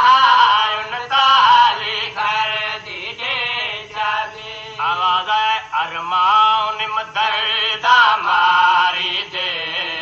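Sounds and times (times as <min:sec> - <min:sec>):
man chanting a lament: 0:00.0 - 0:10.0.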